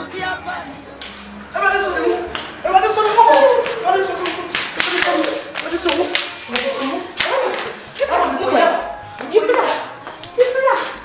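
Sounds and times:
sharp slaps: 1.0s - 1.3s, 2.3s - 2.6s, 3.4s - 8.1s
woman calling out: 1.6s - 11.0s.

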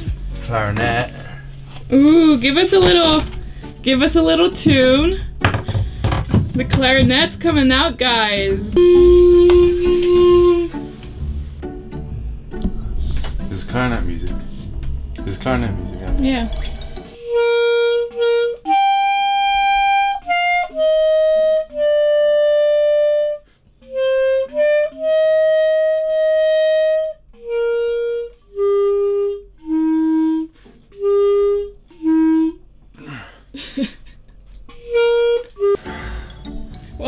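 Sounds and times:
clarinet playing slow tune: 8.1s - 11.4s, 17.2s - 32.6s, 34.8s - 35.8s.

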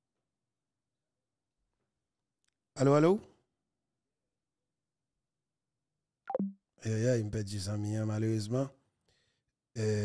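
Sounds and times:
short blip falling in pitch: 6.3s - 6.6s.

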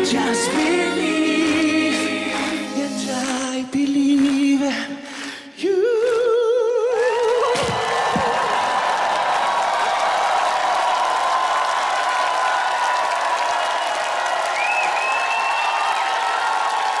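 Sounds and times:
audience applauding and cheering: 0.0s - 4.6s, 6.0s - 17.0s.

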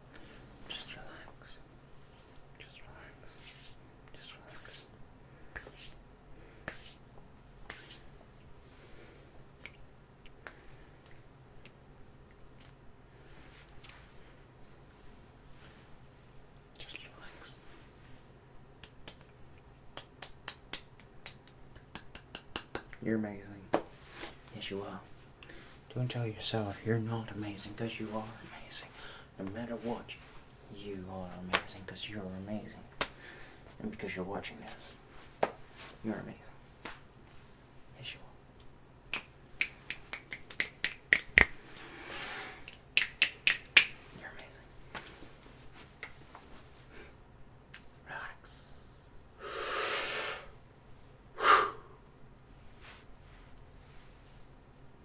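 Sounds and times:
soft hiss: 0.0s - 55.0s
finger snaps: 9.6s - 12.8s, 18.8s - 23.0s, 38.6s - 41.6s, 42.6s - 44.0s, 47.7s - 47.9s.

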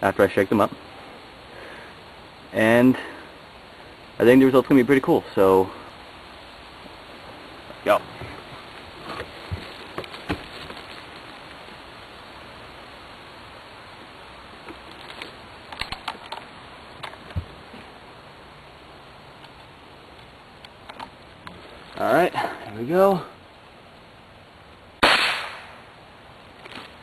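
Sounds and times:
steady hiss: 0.0s - 27.0s
faint clicks and knocks: 19.4s - 22.0s.

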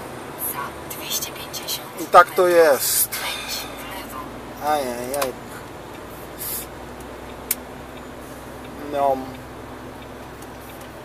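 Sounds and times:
truck engine and road hum: 0.0s - 11.0s
short hiss: 6.4s - 6.7s.

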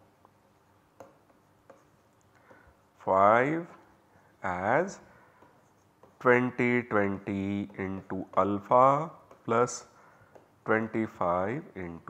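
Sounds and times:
stylus tapping and scratching on tablet: 0.0s - 11.8s.

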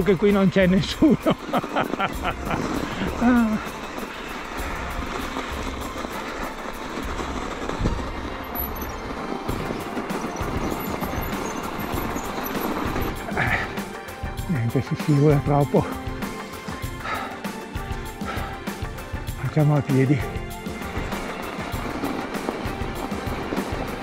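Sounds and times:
bike tyres rolling over snow: 0.0s - 24.0s
person laughing: 1.0s - 3.8s.

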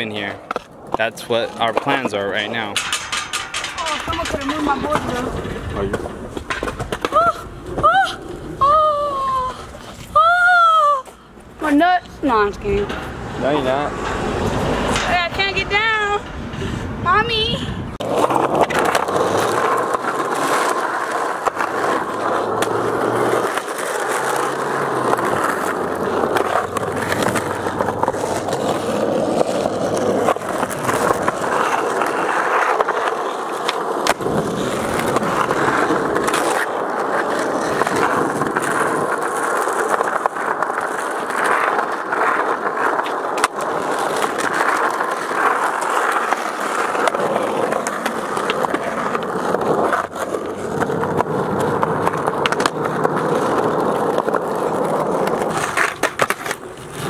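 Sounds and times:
skateboard wheels rolling on asphalt: 0.0s - 57.0s
skateboard tail clacks and landings: 0.4s - 8.7s, 18.0s - 57.0s.

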